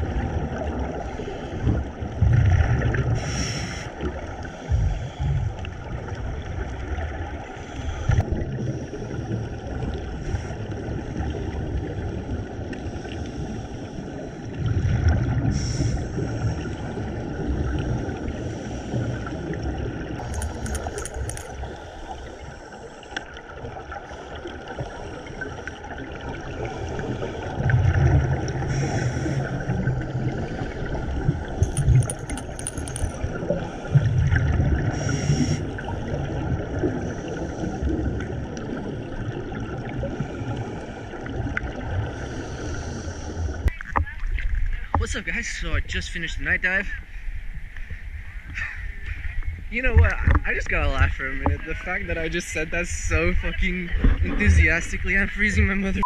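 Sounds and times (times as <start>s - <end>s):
exhaled bubbles gurgling: 0.0s - 45.0s
steady underwater hiss: 0.2s - 2.2s, 2.9s - 32.0s, 32.6s - 43.7s.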